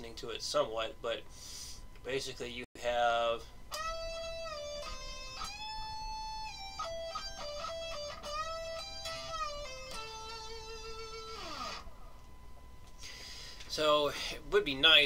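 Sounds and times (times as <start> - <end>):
electric guitar lead with bends: 3.7 - 12.2.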